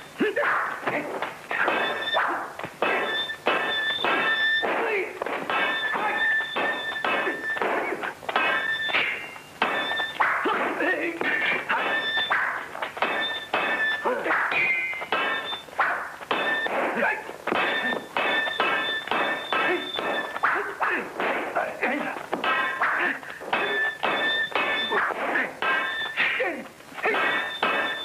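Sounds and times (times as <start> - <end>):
dull thuds of blows: 0.4 - 28.0
sharp metallic sword clangs: 1.5 - 21.4, 22.4 - 28.0.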